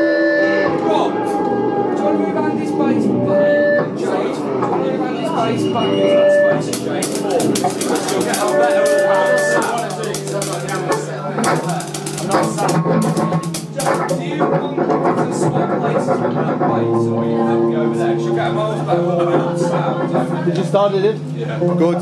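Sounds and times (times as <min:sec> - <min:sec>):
indistinct chatter: 0:00.0 - 0:22.0
instrument short held notes: 0:05.8 - 0:14.2
cymbal and drum strikes: 0:06.7 - 0:14.4.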